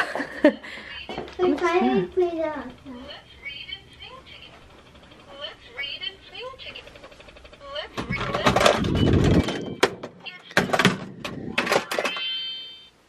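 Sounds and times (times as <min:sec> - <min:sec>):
door knocks and rattles: 0:08.0 - 0:11.9.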